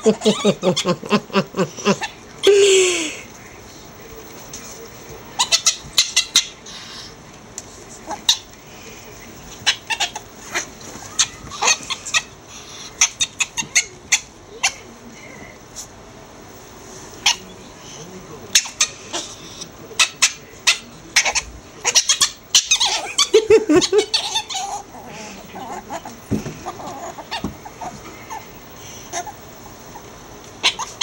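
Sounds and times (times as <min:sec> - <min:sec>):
person laughing: 0:00.0 - 0:03.3, 0:23.0 - 0:24.3
ferrets clucking: 0:04.9 - 0:07.2, 0:07.9 - 0:15.0, 0:17.1 - 0:17.8, 0:18.4 - 0:31.0.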